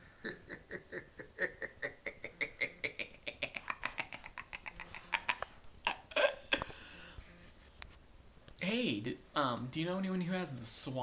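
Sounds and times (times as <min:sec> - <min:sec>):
man giggling: 0:00.0 - 0:07.1.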